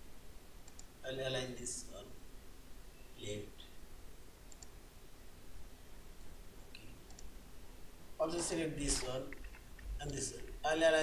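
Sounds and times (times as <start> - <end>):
low steady hiss: 0.0 - 11.0
computer mouse button clicking: 4.5 - 4.7, 6.8 - 7.3.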